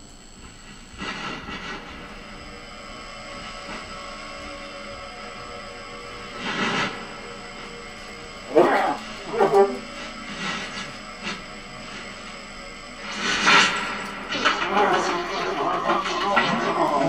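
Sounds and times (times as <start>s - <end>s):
saxophone and electronics improvisation: 0.0s - 17.0s.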